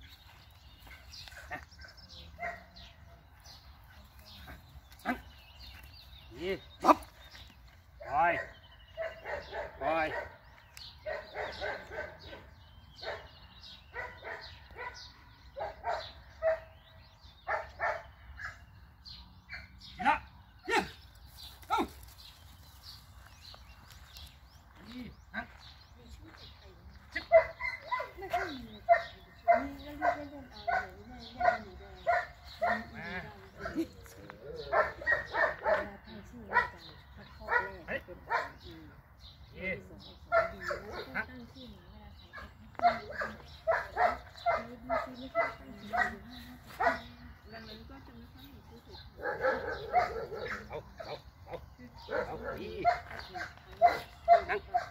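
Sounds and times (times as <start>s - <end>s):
dogs barking: 0.8s - 3.2s, 8.0s - 18.7s, 27.0s - 38.8s, 40.1s - 41.5s, 42.2s - 54.9s.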